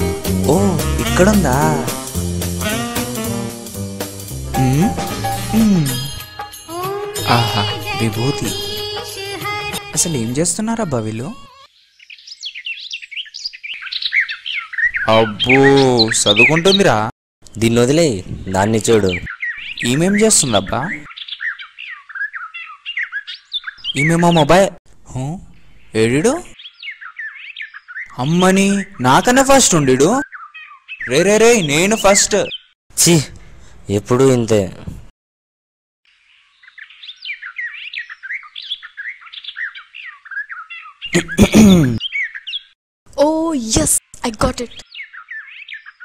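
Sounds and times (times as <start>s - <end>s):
small birds chirping: 4.0s - 32.8s, 36.1s - 46.0s
man's loud voice: 7.2s - 8.7s.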